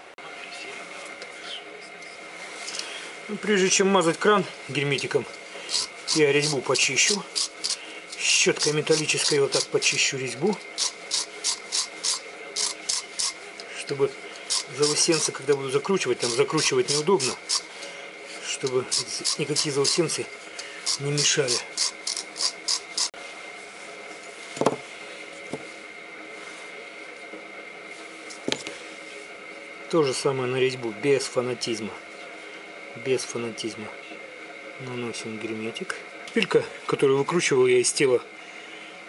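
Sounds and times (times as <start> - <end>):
faint high whine: 0.0 - 39.0
steady background hum: 0.0 - 39.0
wire brush scrubbing metal thread: 3.6 - 23.2.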